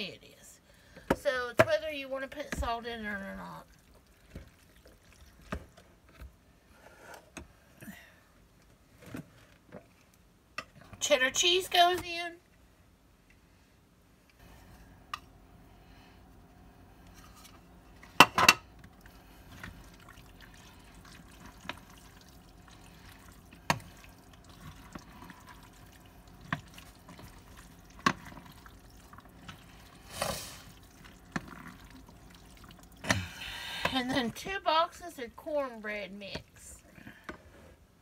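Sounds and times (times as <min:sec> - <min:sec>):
spoon stirring thick mixture: 0:18.8 - 0:33.1.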